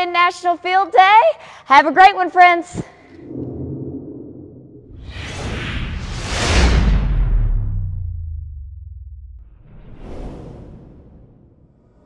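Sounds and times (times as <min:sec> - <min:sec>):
low rumble: 0:03.1 - 0:12.0
logo whoosh: 0:03.2 - 0:11.9.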